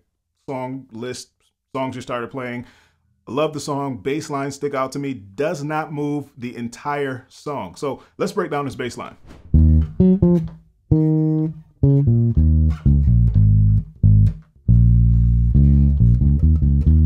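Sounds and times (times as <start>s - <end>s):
funk electric bass line: 9.5s - 17.0s.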